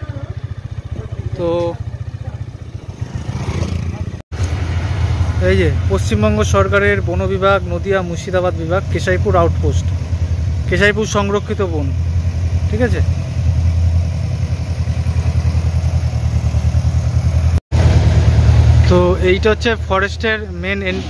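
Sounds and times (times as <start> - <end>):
tractor diesel engine chugging: 0.0 - 3.2, 5.4 - 21.0.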